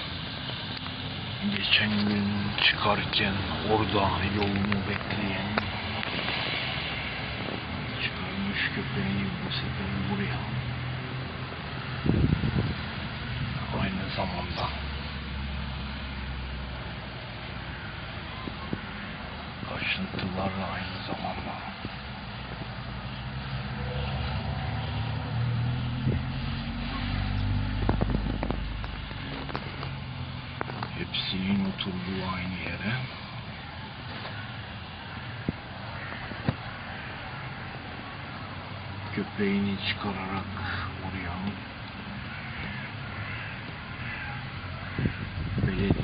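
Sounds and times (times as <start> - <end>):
steady rushing noise: 0.0 - 46.0
vehicle engine hum: 0.0 - 46.0.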